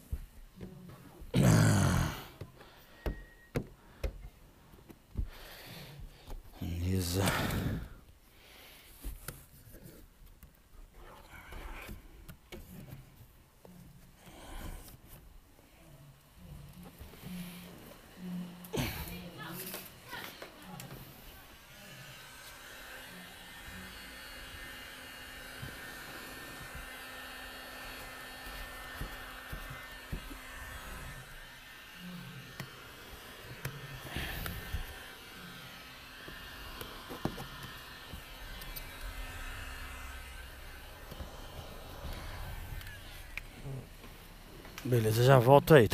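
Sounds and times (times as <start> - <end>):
heat gun fan humming: 1.1 - 10.5, 16.1 - 45.9.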